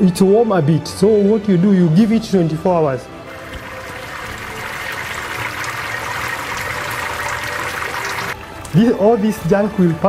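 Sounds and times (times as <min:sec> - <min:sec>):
honey trickling into a sieve: 0:03.3 - 0:08.9.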